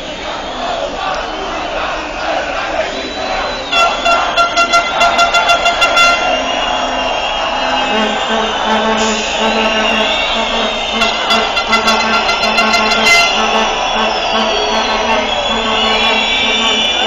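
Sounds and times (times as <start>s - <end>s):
street crowd noise: 0.0s - 17.0s
vehicle horn honking: 3.7s - 17.0s.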